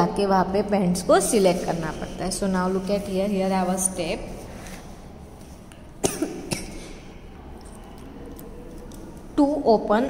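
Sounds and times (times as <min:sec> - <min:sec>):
woman coughing: 0:06.0 - 0:07.0.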